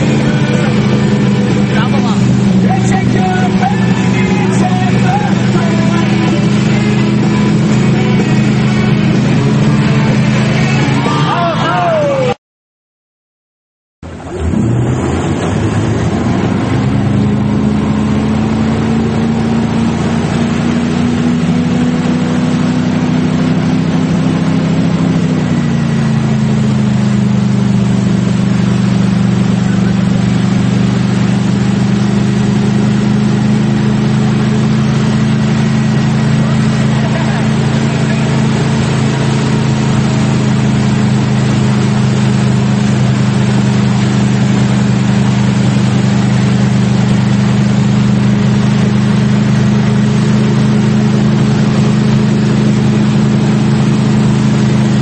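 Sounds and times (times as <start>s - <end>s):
boat engine running: 0.0s - 12.4s, 14.0s - 55.0s
water rushing: 0.0s - 12.4s, 14.0s - 55.0s.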